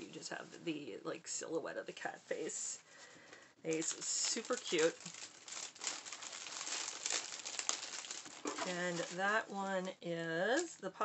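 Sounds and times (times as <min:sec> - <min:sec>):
woman speaking: 0:00.0 - 0:02.8, 0:03.7 - 0:05.1, 0:08.5 - 0:11.0
packaging crinkling and rustling: 0:03.7 - 0:10.9.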